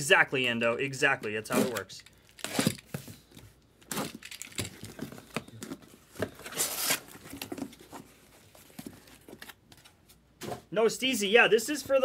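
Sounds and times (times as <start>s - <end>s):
cardboard tearing scrape: 1.5s - 3.0s, 6.4s - 7.2s.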